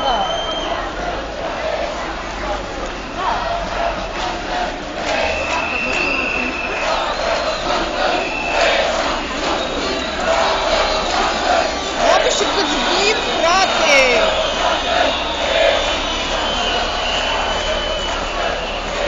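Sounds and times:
crowd shouting and chanting: 0.0 - 19.0.

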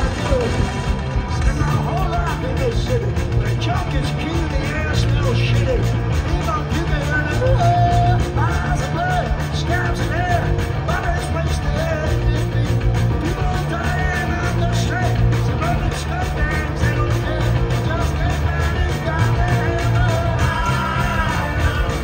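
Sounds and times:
bass and drums: 0.0 - 22.0
distorted electric guitar: 0.0 - 22.0
singer's vocals: 0.0 - 22.0.

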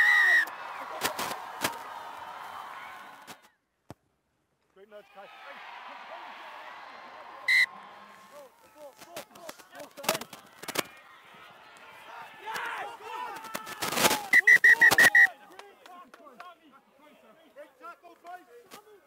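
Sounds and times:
crowd and players shouting: 0.0 - 3.5, 4.8 - 19.0
referee's whistle blast: 7.5 - 7.7, 14.2 - 15.3
short high whistle pips: 7.5 - 7.7, 14.2 - 15.3.

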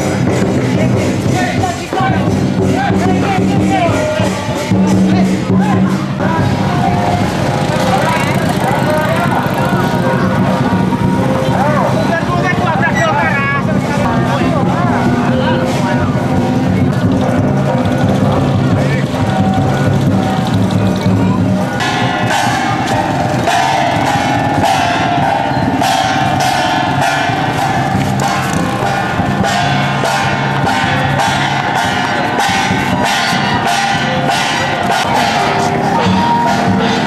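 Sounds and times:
metallic percussion strikes: 0.0 - 37.0
voices: 0.0 - 37.0.

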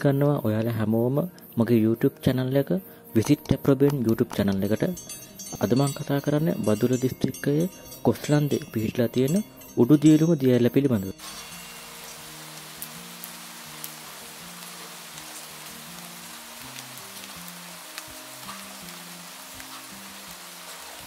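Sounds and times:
soft low music notes: 0.0 - 21.0
waterfall rushing: 11.2 - 21.0.

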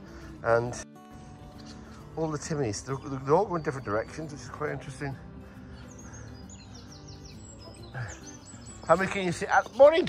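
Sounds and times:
songbird chirping: 0.0 - 10.0.

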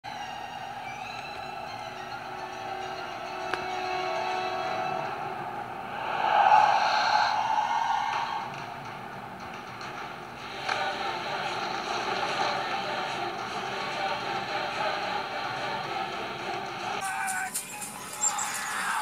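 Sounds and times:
faint music: 0.1 - 19.0.

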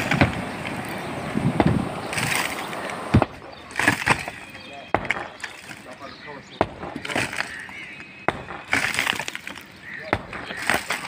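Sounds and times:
masonry breaking apart: 1.6 - 6.0, 6.6 - 7.6, 8.3 - 11.0.

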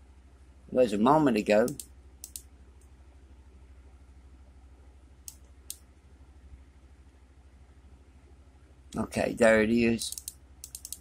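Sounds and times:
low steady hum: 0.0 - 11.0
computer mouse clicks: 1.6 - 2.9, 5.2 - 5.8, 10.1 - 11.0.

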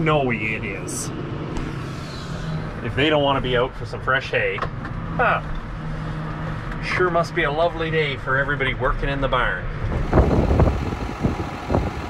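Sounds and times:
wind buffeting microphone: 9.8 - 12.0.

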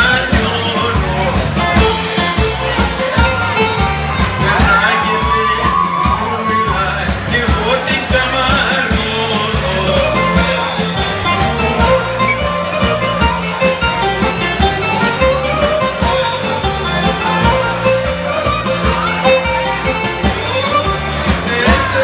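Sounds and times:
live dance band over speakers: 0.0 - 22.0.

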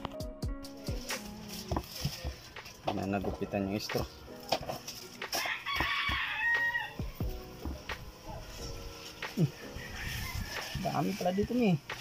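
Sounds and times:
rooster crowing: 5.4 - 7.2, 9.4 - 11.7.

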